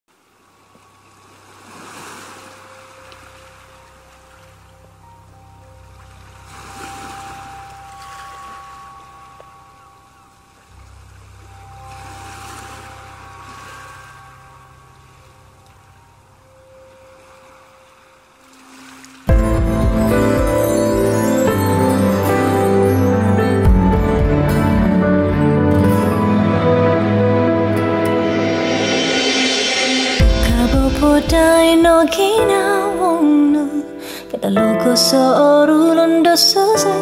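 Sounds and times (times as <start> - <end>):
ocean waves on shore: 0.1 - 5.2, 5.8 - 37.0
quiet ambient music: 0.1 - 37.0
full band playing: 19.3 - 32.0.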